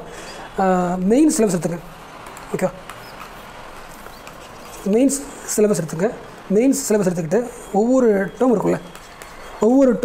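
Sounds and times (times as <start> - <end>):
room and microphone hiss: 0.0 - 10.0.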